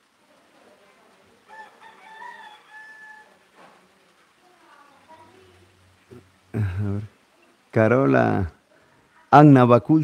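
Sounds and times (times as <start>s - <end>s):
distant rooster crowing: 1.4s - 3.7s.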